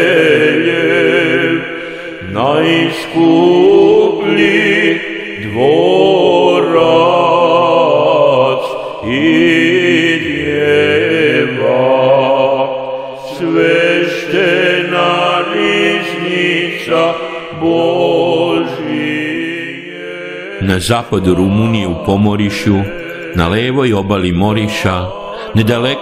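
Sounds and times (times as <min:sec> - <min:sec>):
male voice chanting a hymn: 0:00.0 - 0:26.0.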